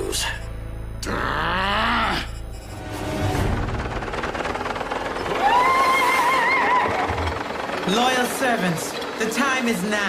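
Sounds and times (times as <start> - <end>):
dense mechanical buzz: 0.0 - 10.0.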